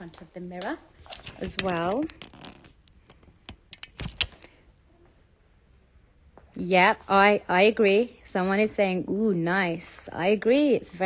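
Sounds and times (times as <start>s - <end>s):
phone microphone handling rustle: 0.6s - 4.6s
sharp clicks: 3.5s - 4.5s.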